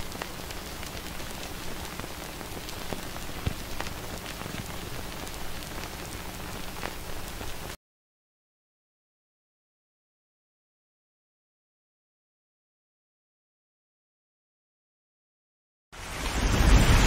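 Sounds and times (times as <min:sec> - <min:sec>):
crackling hiss with clicks and pops: 0:00.0 - 0:07.8, 0:16.0 - 0:17.0.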